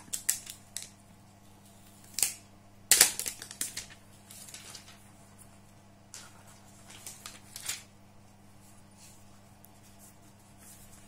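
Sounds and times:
plastic film crackling: 0.0 - 1.0, 2.0 - 5.0, 6.1 - 7.9
faint steady hum: 0.0 - 11.0.

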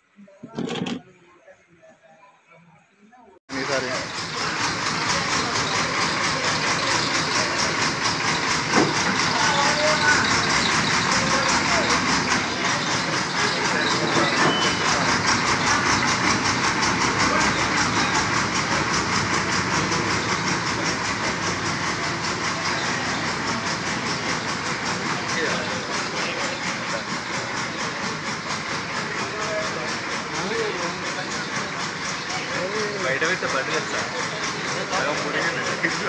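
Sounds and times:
people's voices: 0.0 - 36.0
diesel engine running: 3.5 - 36.0.

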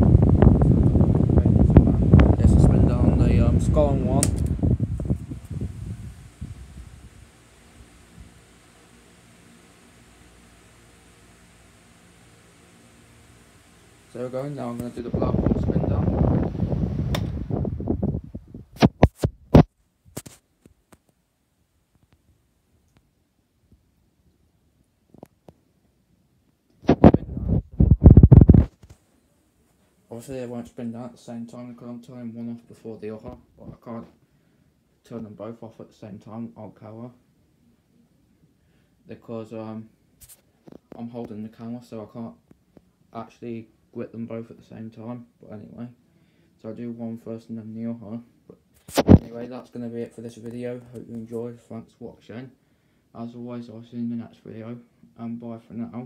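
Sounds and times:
fan hum: 0.0 - 19.7, 26.8 - 56.0
fan airflow buffeting microphone: 0.0 - 20.3, 26.8 - 29.0, 46.7 - 52.4.

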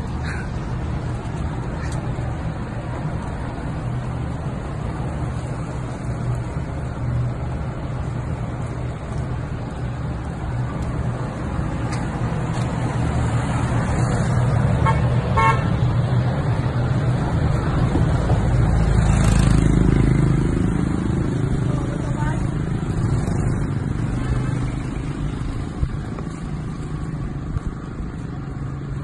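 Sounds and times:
car horn toots: 14.8 - 15.7.

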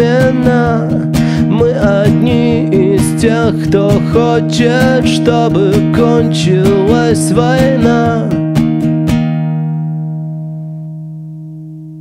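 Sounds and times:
acoustic guitar chord ringing: 0.0 - 12.0
guitar strums: 0.0 - 12.0.

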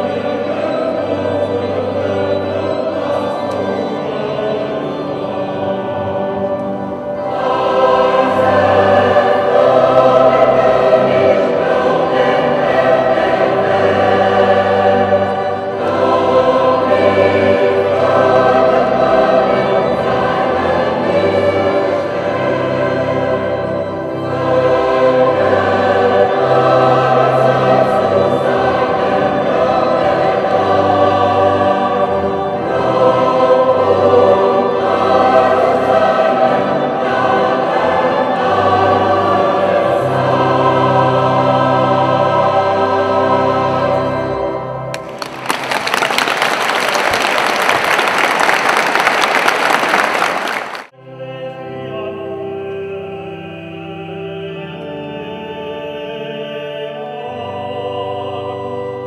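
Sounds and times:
mixed choir singing: 0.0 - 45.4, 46.2 - 59.0.

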